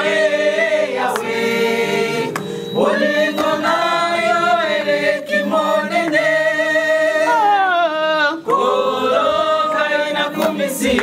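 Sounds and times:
women singing a worship song: 0:00.0 - 0:11.0.

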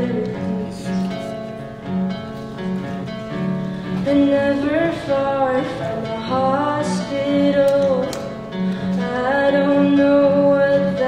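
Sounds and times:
acoustic guitar: 0:00.0 - 0:11.0
person singing long notes: 0:04.0 - 0:11.0.

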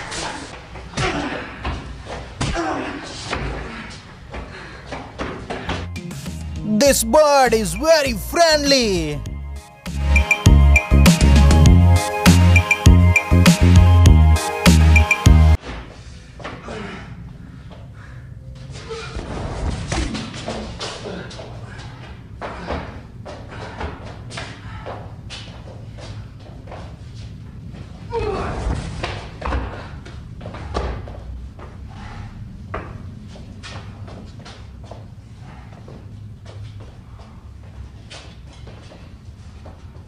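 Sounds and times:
people shouting: 0:06.6 - 0:09.2.

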